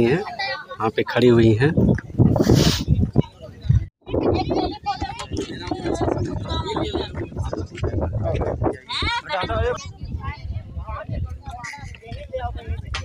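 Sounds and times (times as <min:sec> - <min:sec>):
people talking: 0:02.6 - 0:13.0.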